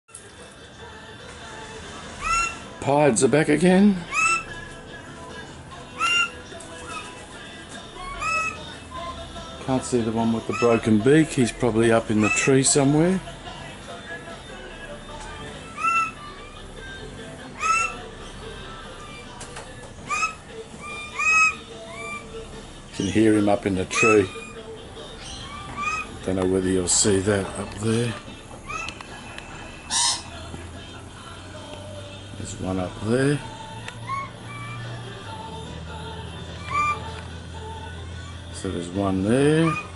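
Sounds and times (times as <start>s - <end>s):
bird whistling: 2.1s - 2.7s, 3.9s - 4.8s, 5.9s - 7.2s, 7.9s - 9.2s, 10.1s - 13.0s, 15.3s - 16.7s, 17.4s - 30.4s, 34.0s - 35.4s, 36.3s - 37.4s, 38.0s - 39.9s.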